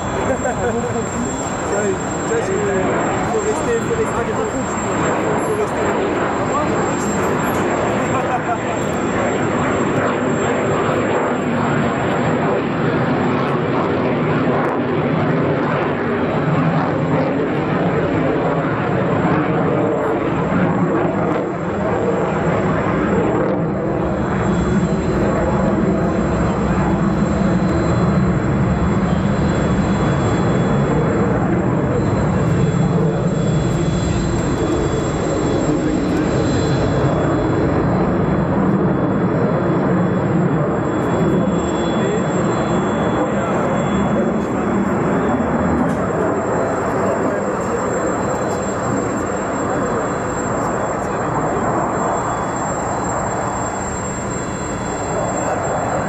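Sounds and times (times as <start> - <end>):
fighter jet flying overhead: 0.0 - 56.0.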